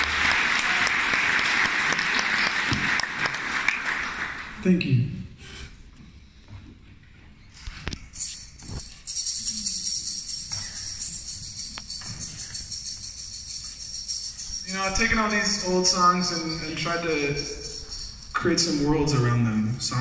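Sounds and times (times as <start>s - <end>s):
handheld rattle shaken: 8.2s - 19.2s.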